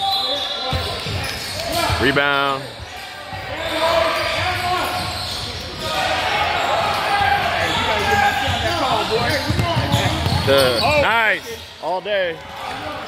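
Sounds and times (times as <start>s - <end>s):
sneakers squeaking: 0.0s - 11.8s
voices in echoing hall: 0.0s - 13.0s
basketball bouncing: 8.5s - 11.0s.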